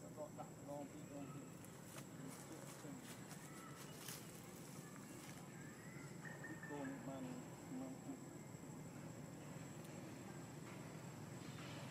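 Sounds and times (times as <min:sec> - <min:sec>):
low outdoor murmur: 0:00.0 - 0:11.9.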